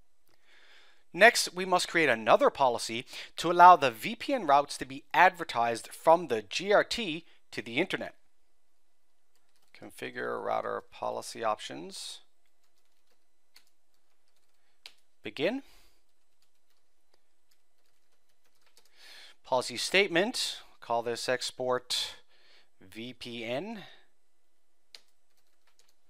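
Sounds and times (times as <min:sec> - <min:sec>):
low background hiss: 0:00.0 - 0:26.0
computer keyboard typing: 0:09.3 - 0:09.8, 0:12.5 - 0:15.1, 0:16.0 - 0:19.0, 0:24.9 - 0:26.0.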